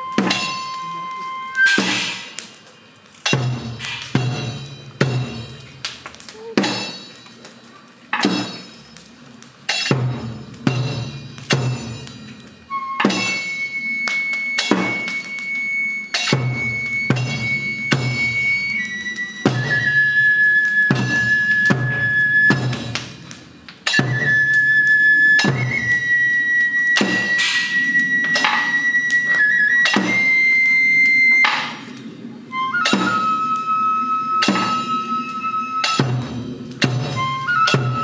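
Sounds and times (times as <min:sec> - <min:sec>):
bamboo flute long high notes: 0:00.0 - 0:02.4, 0:12.7 - 0:22.9, 0:24.0 - 0:38.0
drum strikes: 0:00.1 - 0:00.7, 0:01.6 - 0:02.5, 0:03.3 - 0:07.1, 0:08.1 - 0:08.8, 0:09.7 - 0:12.3, 0:13.0 - 0:13.5, 0:14.6 - 0:15.2, 0:16.2 - 0:18.4, 0:20.9 - 0:24.4, 0:29.8 - 0:30.3, 0:32.8 - 0:33.2, 0:34.4 - 0:34.9, 0:35.8 - 0:38.0.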